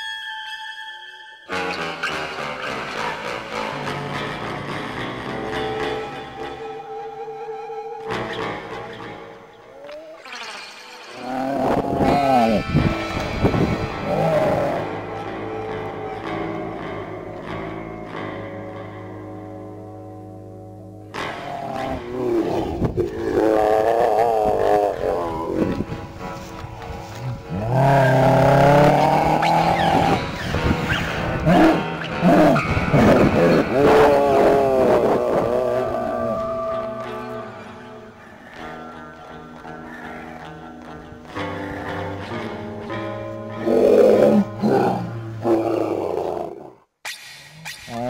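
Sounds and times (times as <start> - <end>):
background music: 0.0 - 48.0
person growling and roaring: 11.2 - 15.1, 21.2 - 25.9, 27.1 - 30.4, 31.4 - 36.8, 43.5 - 46.8
loud rough roars: 27.5 - 30.3.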